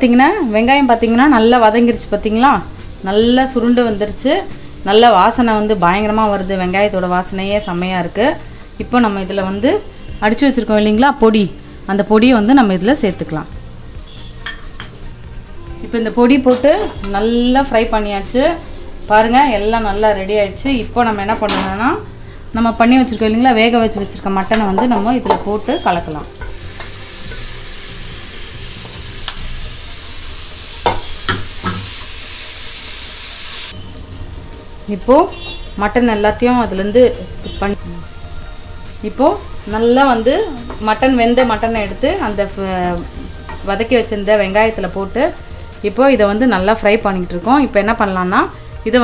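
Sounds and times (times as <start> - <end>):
onions sizzling: 0.0 - 49.0.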